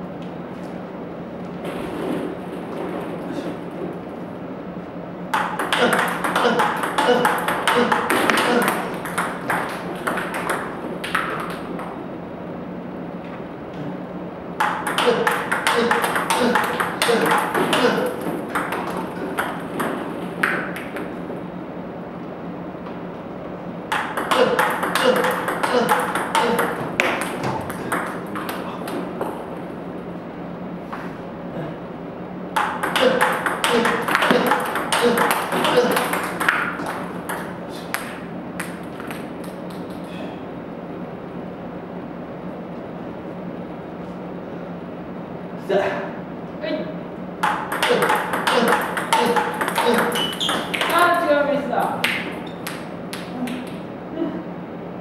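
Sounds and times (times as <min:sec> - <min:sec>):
table tennis balls clicking: 0:05.3 - 0:12.0, 0:14.6 - 0:21.3, 0:23.9 - 0:29.4, 0:32.5 - 0:40.1, 0:47.4 - 0:51.2, 0:52.0 - 0:53.9.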